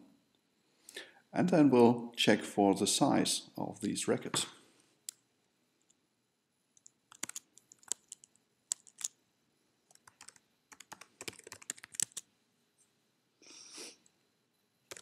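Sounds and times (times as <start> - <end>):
computer keyboard typing: 6.8 - 9.1, 9.9 - 12.2.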